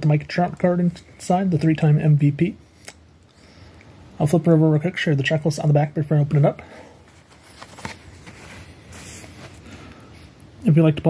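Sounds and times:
short rustle: 7.0s - 9.9s
blister pack handling: 7.0s - 10.0s.

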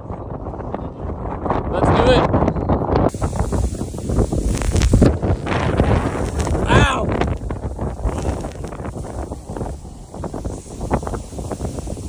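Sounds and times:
strong wind on microphone: 0.0s - 12.0s.

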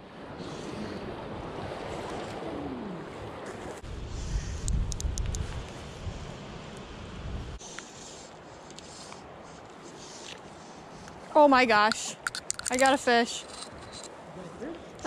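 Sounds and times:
wind buffeting microphone: 0.7s - 7.6s.

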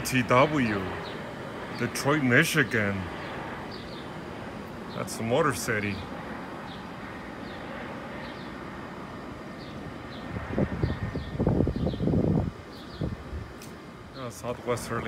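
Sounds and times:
jet engines rushing: 0.0s - 15.0s.

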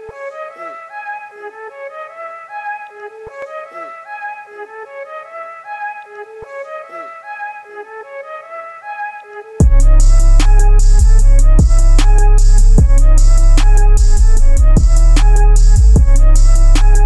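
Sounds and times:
instrumental background music: 0.0s - 17.0s.

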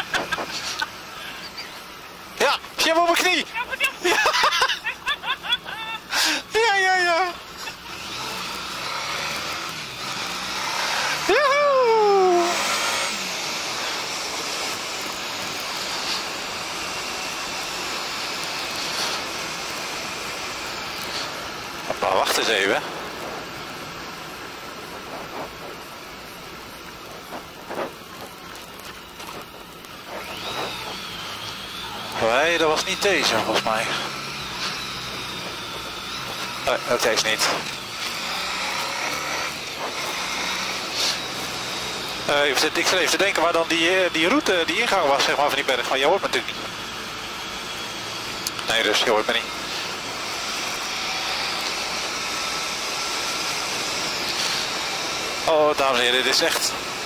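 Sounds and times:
motorcycle engine running: 3.4s - 57.0s
short voice sounds: 11.3s - 12.6s
wind rush: 22.8s - 28.1s.

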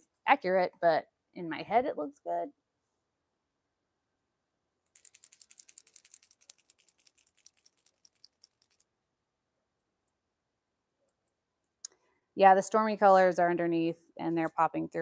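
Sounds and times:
spray can ball rattling: 4.9s - 8.8s.

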